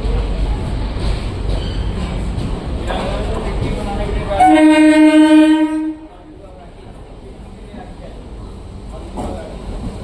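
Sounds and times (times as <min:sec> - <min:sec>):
train rumble: 0:00.0 - 0:10.0
train horn blast: 0:04.4 - 0:06.2.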